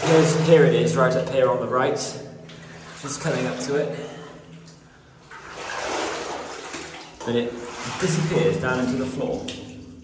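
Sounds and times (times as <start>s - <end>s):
wading through shallow water: 2.5s - 10.0s.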